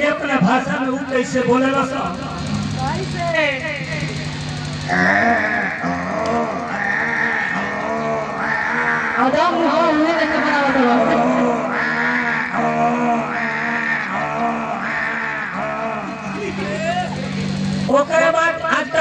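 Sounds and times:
man singing through loudspeakers: 17.9 - 19.0.

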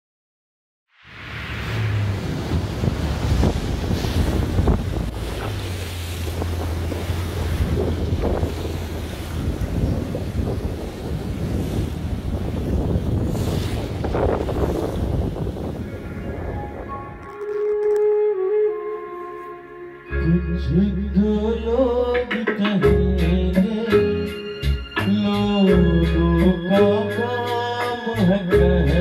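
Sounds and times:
sea waves: 1.0 - 20.1
boat engine droning: 1.2 - 29.0
wind buffeting microphone: 1.5 - 18.3.

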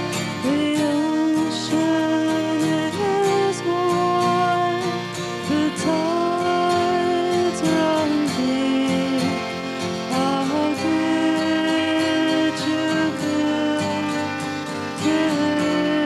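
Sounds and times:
guitar accompaniment: 0.0 - 16.0
woman singing into microphone: 0.0 - 16.0.

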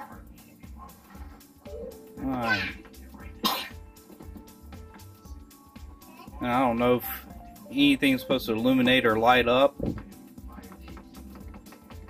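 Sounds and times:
background music with steady beat: 0.0 - 12.0
person coughing: 3.4 - 3.8.

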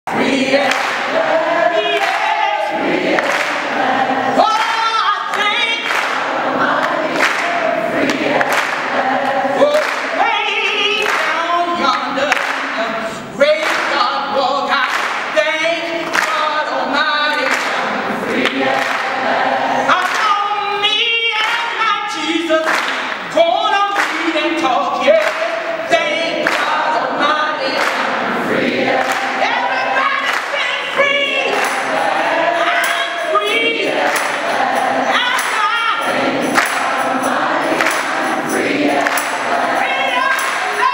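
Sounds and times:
woman singing with vibrato: 3.8 - 18.5, 19.6 - 40.9.

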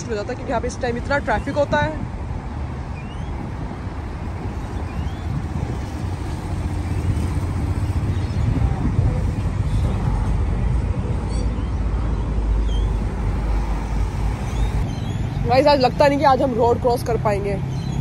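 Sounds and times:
heavy road traffic: 0.0 - 18.0.

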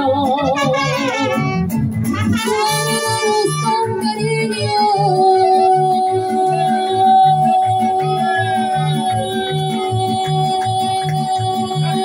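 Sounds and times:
strummed guitar rhythm: 0.0 - 12.0
trumpets playing held notes: 0.3 - 4.0.

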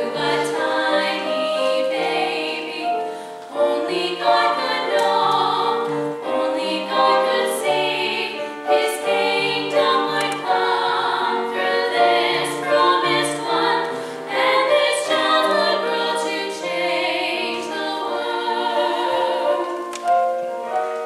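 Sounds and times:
choir singing in harmony: 0.0 - 21.0.

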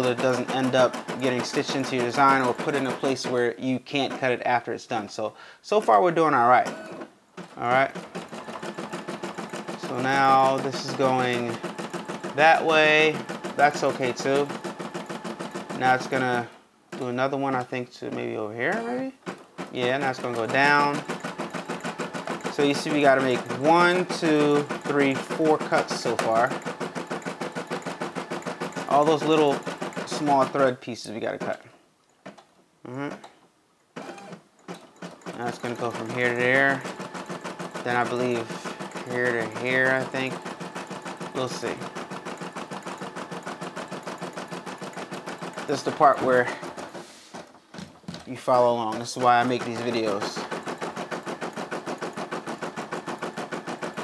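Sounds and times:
embroidery machine stitching: 0.0 - 4.4, 5.8 - 31.6, 34.0 - 54.0.

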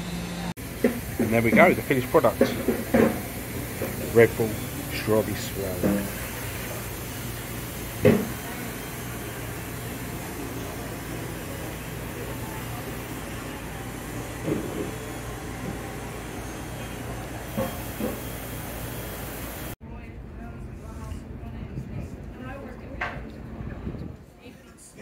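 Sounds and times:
distant voices: 0.0 - 19.8.

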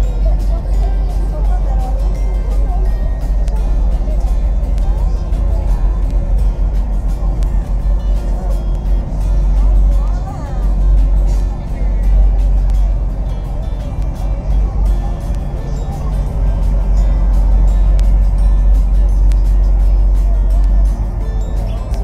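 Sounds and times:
steady deep rumble: 0.0 - 22.0.

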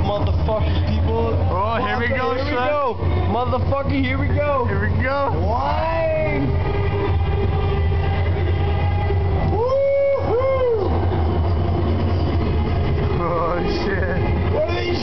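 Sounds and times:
ride simulator rumbling: 0.0 - 15.0.

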